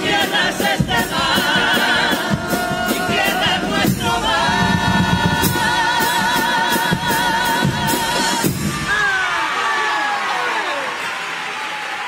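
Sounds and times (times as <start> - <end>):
male choir singing in harmony: 0.0 - 8.9
drum: 0.0 - 9.3.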